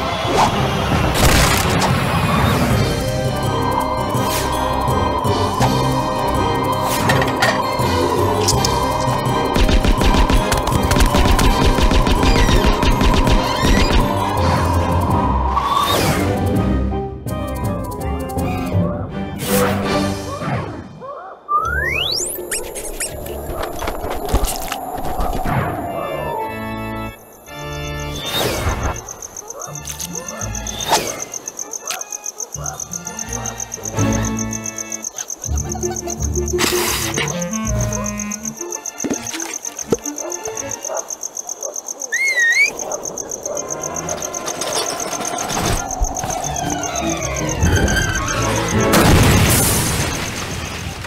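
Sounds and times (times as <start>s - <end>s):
background music: 0.0s - 21.1s, 25.6s - 41.4s, 42.8s - 50.3s
cartoon music: 32.7s - 40.8s
rising rumbling texture: 45.2s - 48.8s.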